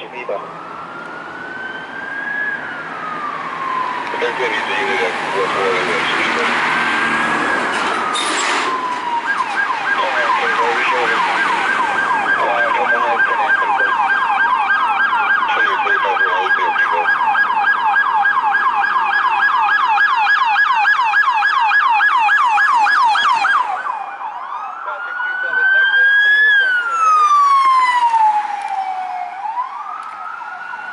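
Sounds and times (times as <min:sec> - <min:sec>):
police siren yelping and wailing: 0:00.0 - 0:30.9.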